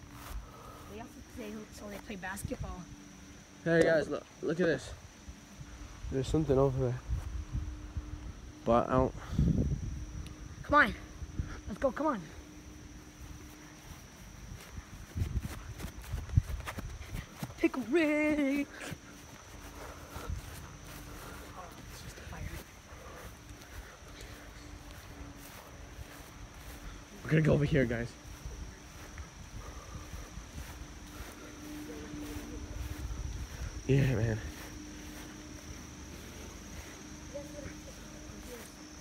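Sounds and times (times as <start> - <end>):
footsteps on grass: 0.0 - 3.2, 12.4 - 39.0
insects trilling: 0.0 - 39.0
faint voices: 28.2 - 39.0.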